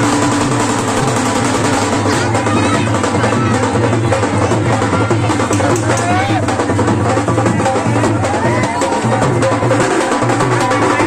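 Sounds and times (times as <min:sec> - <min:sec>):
packed crowd noise: 0:00.0 - 0:11.0
procession music with drumming: 0:00.0 - 0:11.0.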